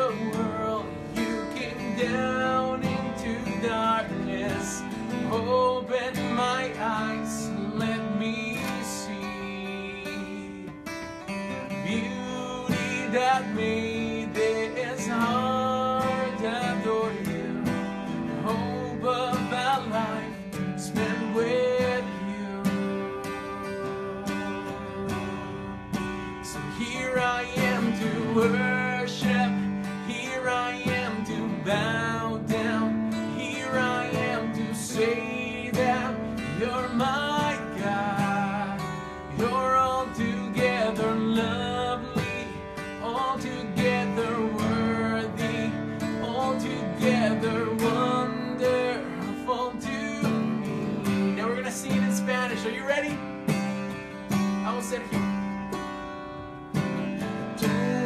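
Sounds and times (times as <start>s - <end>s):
acoustic guitar strumming: 0.0s - 58.0s.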